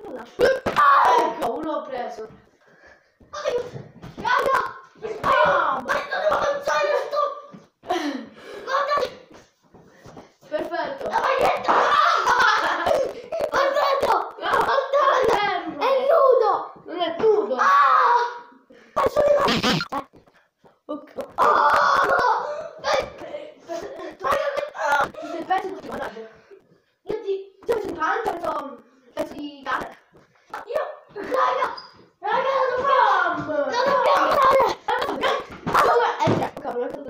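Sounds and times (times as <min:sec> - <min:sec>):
boys shouting and yelling: 0:00.0 - 0:02.2, 0:03.2 - 0:09.5, 0:10.8 - 0:19.9, 0:21.2 - 0:26.1, 0:30.5 - 0:37.0
children calling out: 0:21.4 - 0:23.2.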